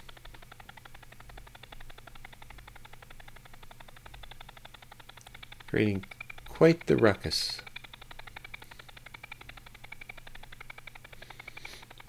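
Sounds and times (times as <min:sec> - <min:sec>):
rapid stuttering pulses: 0:00.0 - 0:12.0.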